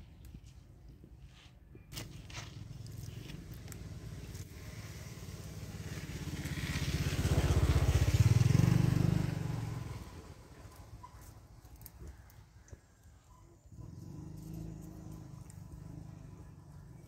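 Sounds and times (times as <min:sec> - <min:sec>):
motorbike passing by: 0:02.0 - 0:12.1, 0:13.6 - 0:17.0.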